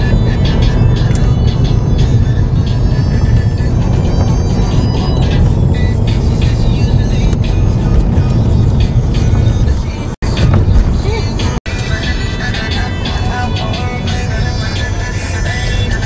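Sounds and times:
music playing in car: 0:00.0 - 0:16.0
road noise rumble: 0:00.0 - 0:16.0.

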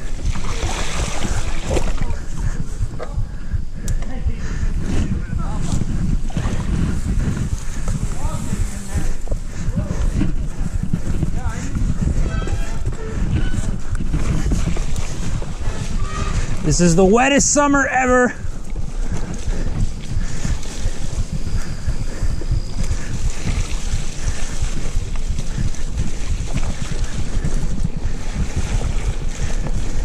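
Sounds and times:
wind buffeting microphone: 0:00.0 - 0:30.0
bike tyres on wet ground: 0:03.9 - 0:30.0.

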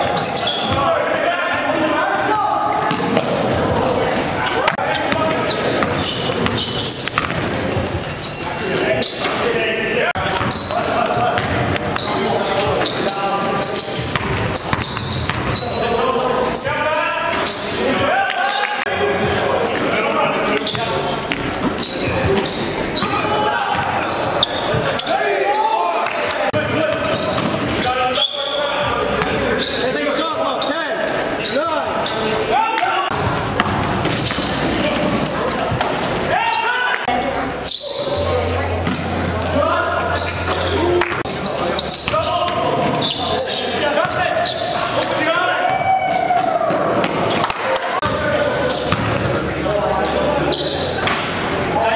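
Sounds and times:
players calling out: 0:00.0 - 0:51.9
basketball bouncing on hardwood floor: 0:14.0 - 0:15.4.

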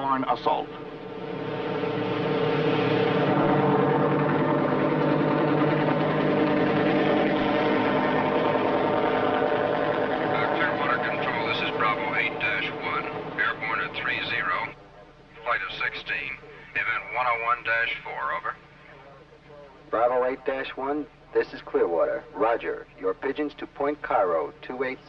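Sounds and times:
helicopter engine and rotor: 0:00.0 - 0:17.7.

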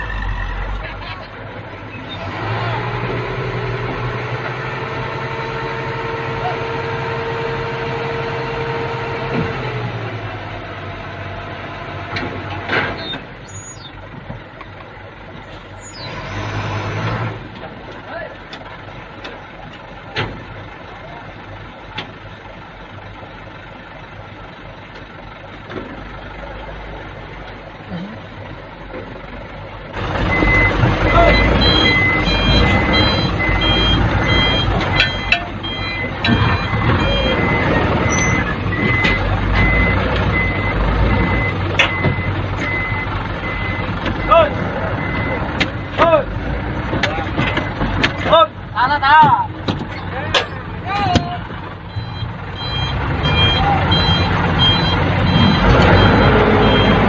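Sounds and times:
dump truck engine running: 0:00.0 - 0:57.0
heavy truck idling: 0:00.0 - 0:57.0
back-up alarm beeping: 0:30.3 - 0:46.0, 0:51.9 - 0:57.0
men's voices: 0:44.2 - 0:51.6.

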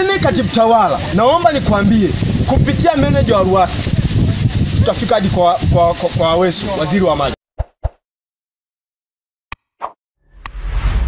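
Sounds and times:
whoosh with deep rumble: 0:10.3 - 0:11.0.

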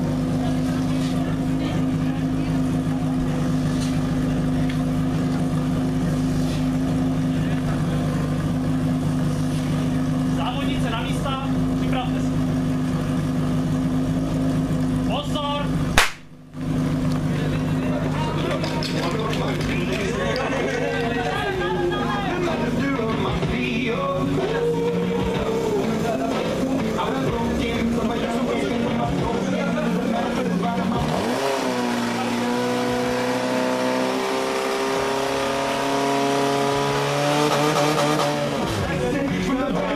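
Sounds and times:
sharp bang: 0:16.0 - 0:16.4
people shouting and cheering: 0:17.3 - 0:31.5
pump engine revving: 0:22.2 - 0:39.6.

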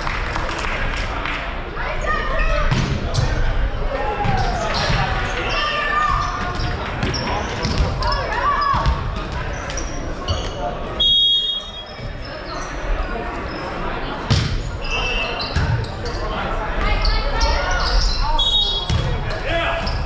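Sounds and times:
many voices chattering: 0:00.0 - 0:20.0
referee's whistle: 0:11.0 - 0:12.0, 0:14.8 - 0:15.6.

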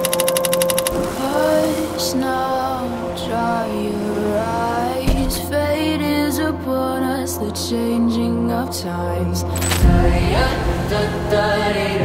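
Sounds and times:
rapid mechanical clicking: 0:00.0 - 0:01.1
person singing: 0:00.0 - 0:12.0.

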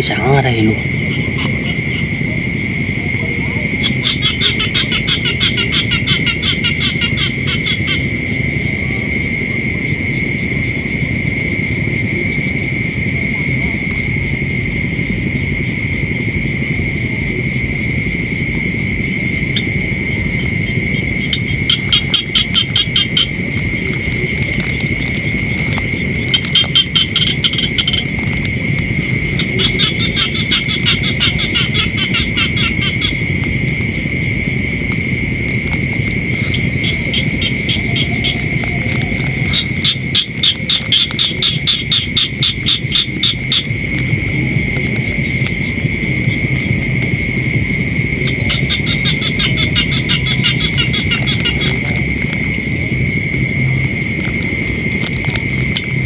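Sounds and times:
high-pitched insect whine: 0:00.0 - 0:56.0
low steady rumble: 0:00.0 - 0:56.0
pulsed trilling frog calls: 0:00.0 - 0:56.0.

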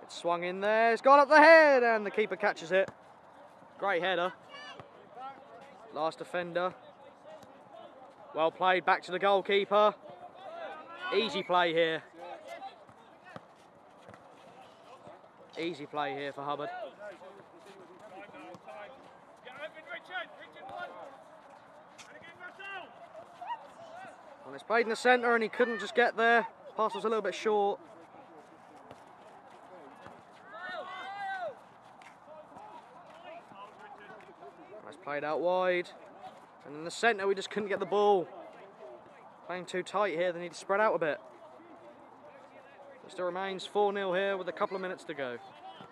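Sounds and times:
distant shouts of players: 0:04.2 - 0:05.4, 0:22.0 - 0:24.5, 0:29.9 - 0:31.7
distant players shouting: 0:29.3 - 0:34.5.

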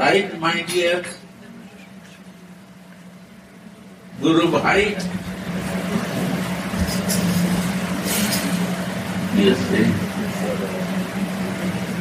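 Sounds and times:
low mechanical hum: 0:00.0 - 0:12.0
continuous rushing noise: 0:04.1 - 0:12.0.

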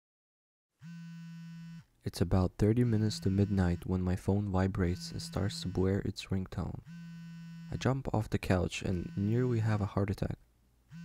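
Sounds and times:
low electric buzz: 0:00.8 - 0:01.9, 0:02.7 - 0:04.0, 0:06.6 - 0:10.0.

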